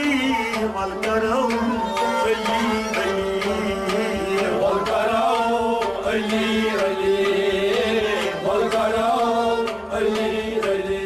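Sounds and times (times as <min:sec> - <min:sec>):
man singing a wavering line: 0:00.0 - 0:09.6
bowed strings: 0:00.0 - 0:11.0
harmonium: 0:00.0 - 0:11.0.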